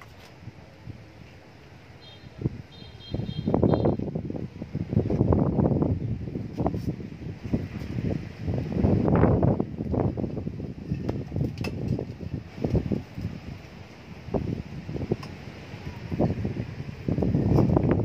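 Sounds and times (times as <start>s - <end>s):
wind buffeting microphone: 2.3s - 18.0s.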